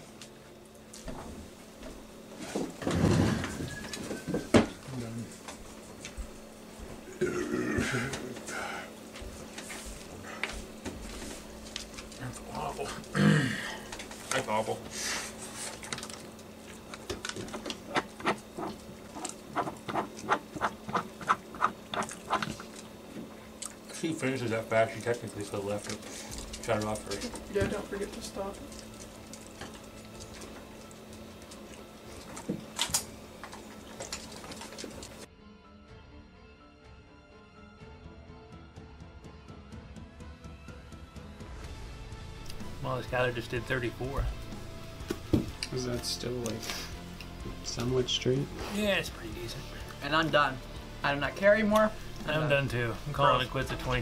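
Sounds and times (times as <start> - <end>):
quiet background music: 0.0 - 21.0, 21.6 - 54.0
faint steady hum: 0.0 - 35.3, 41.8 - 54.0
person belching: 7.1 - 8.4, 13.1 - 13.7
murmured voice: 7.1 - 8.9
clicks and knocks of eating: 15.7 - 23.8, 28.6 - 35.3.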